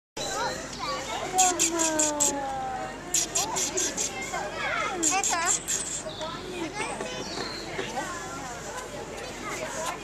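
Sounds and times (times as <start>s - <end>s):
children calling and chattering: 0.2s - 10.0s.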